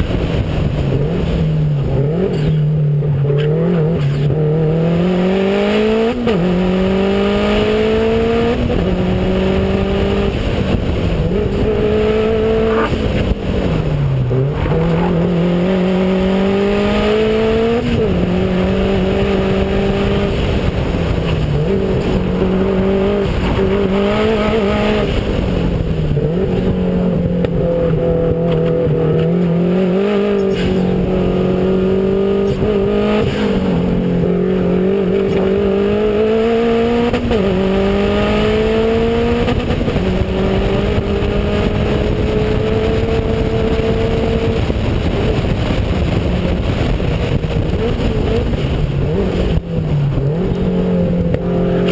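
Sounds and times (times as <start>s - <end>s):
car engine revving: 0.0s - 51.9s.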